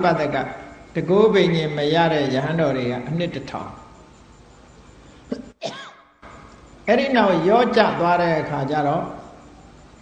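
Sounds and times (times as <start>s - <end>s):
faint room hiss: 0.0s - 10.0s
man clearing his throat: 5.3s - 6.0s.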